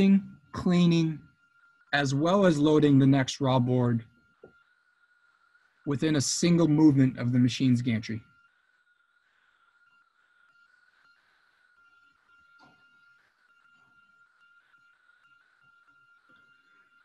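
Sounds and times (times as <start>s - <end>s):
faint high-pitched tone: 0.0s - 17.0s.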